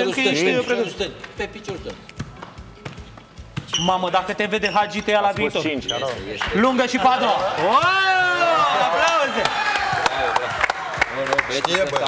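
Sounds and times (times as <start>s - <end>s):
football knocking on feet and floor: 1.2s - 3.9s.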